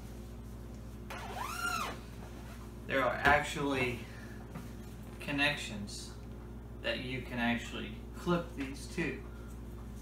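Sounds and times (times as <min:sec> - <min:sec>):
zipper unzipping: 0:01.1 - 0:02.0.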